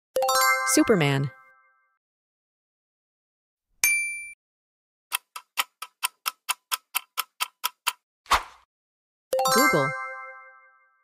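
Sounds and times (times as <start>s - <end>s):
clock ticking: 5.1s - 8.0s.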